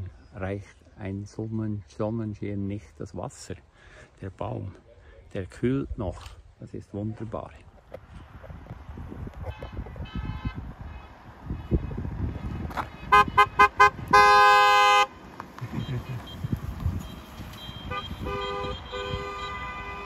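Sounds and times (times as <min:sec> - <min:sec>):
car horns honking: 0:09.4 - 0:20.0.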